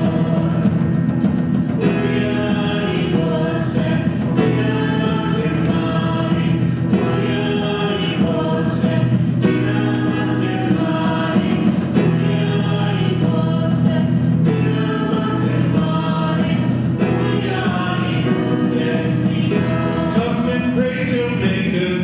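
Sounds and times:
church choir singing a hymn: 0.0s - 22.0s.

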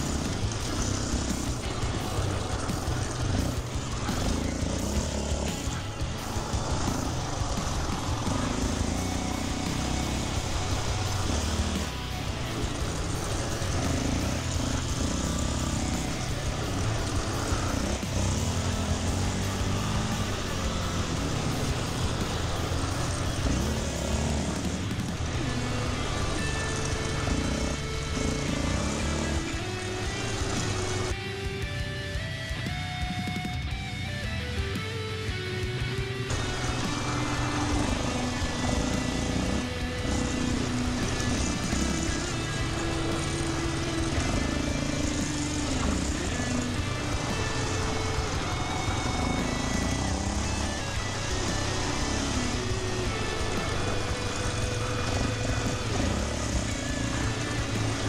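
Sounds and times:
guitar music: 0.0s - 58.0s
quad bike engine revving: 0.0s - 58.0s.

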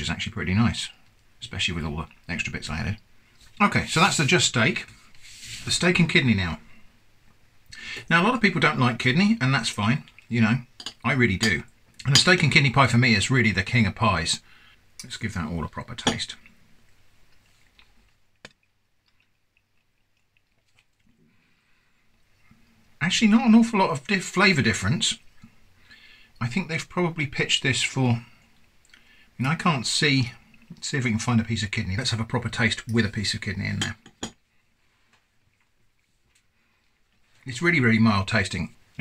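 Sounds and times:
faint chewing: 16.3s - 23.0s, 28.2s - 29.3s, 34.4s - 37.5s.

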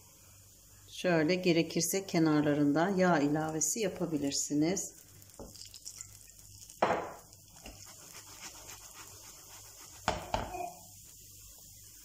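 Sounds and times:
kitchenware knocking: 10.0s - 10.7s.

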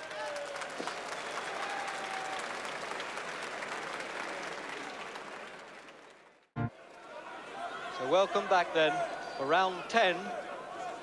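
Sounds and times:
crowd applauding and cheering: 0.0s - 8.6s.

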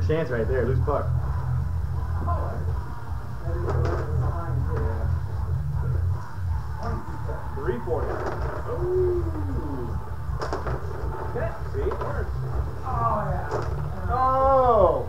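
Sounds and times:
steady low hum: 0.0s - 15.0s
player rods rattling: 7.9s - 8.8s, 10.3s - 14.0s.

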